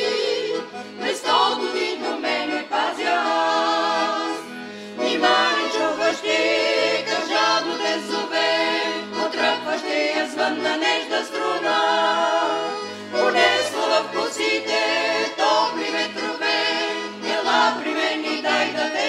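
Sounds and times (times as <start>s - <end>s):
accordion bass notes: 0.0s - 19.0s
vocal group singing: 0.0s - 19.0s.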